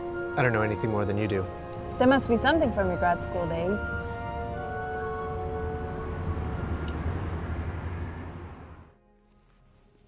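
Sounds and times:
street traffic rumble: 0.0s - 9.0s.

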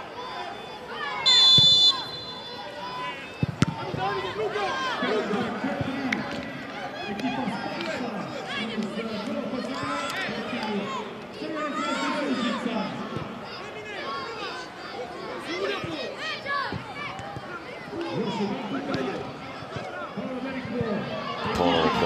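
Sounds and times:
players and coaches shouting: 0.0s - 22.0s
spectators chattering: 0.0s - 22.0s.

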